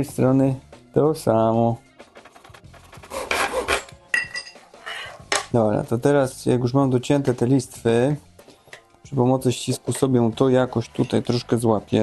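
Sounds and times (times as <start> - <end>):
hand saw rasping strokes: 2.2 - 3.9.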